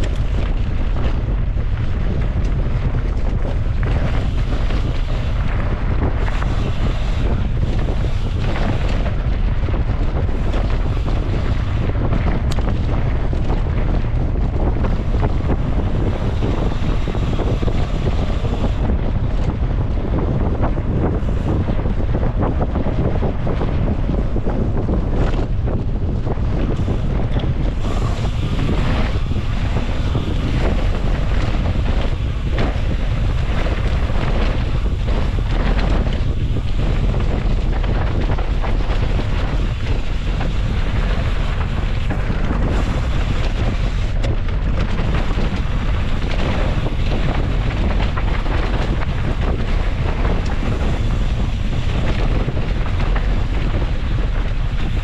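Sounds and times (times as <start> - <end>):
bike rattling: 0.0 - 55.0
wind buffeting microphone: 0.0 - 55.0.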